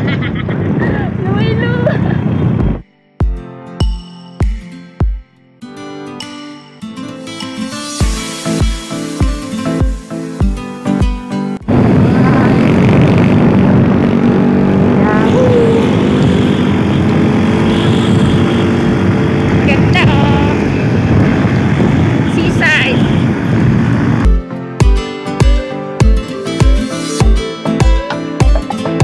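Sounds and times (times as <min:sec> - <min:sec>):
wind rush: 0:00.0 - 0:02.8, 0:11.6 - 0:24.3
background music: 0:02.7 - 0:11.7, 0:24.3 - 0:29.0
motorcycle engine running: 0:11.6 - 0:24.4.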